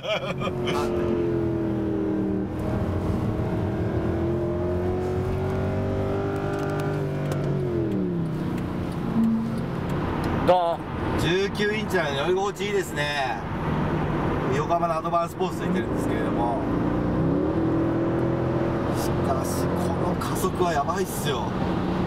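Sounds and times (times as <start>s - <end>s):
car engine accelerating hard: 0.2s - 10.4s, 15.8s - 20.6s
man talking: 19.0s - 21.5s.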